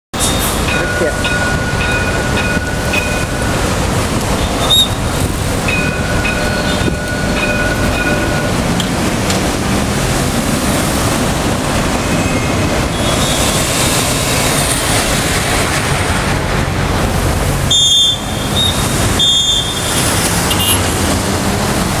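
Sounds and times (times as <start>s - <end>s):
car engines and tyres: 0.1s - 22.0s
tram passing slowly: 0.2s - 22.0s.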